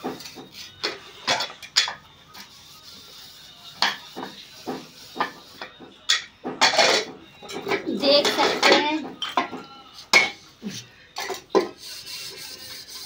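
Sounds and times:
metal pots clanking: 0:03.8 - 0:10.4.

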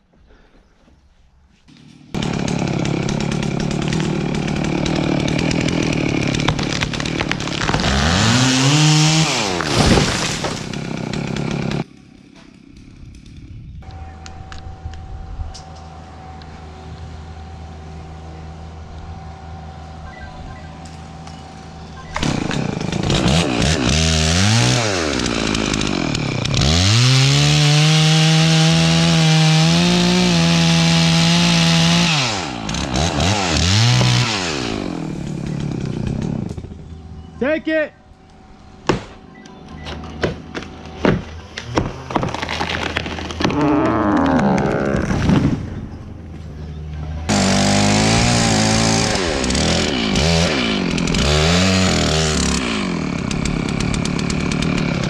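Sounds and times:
chainsaw cutting into tree trunk: 0:01.7 - 0:13.5, 0:22.1 - 0:36.8, 0:38.8 - 0:39.3, 0:39.9 - 0:45.8, 0:47.3 - 0:55.0.

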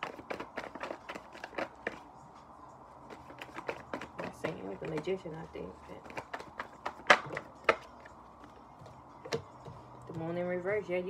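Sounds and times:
cards slapping while shuffled: 0:00.0 - 0:02.1, 0:03.0 - 0:09.7.

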